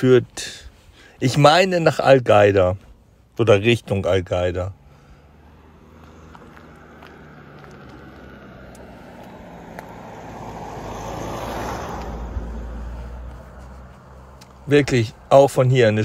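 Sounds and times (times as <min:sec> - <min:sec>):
car driving past: 0:04.7 - 0:14.7.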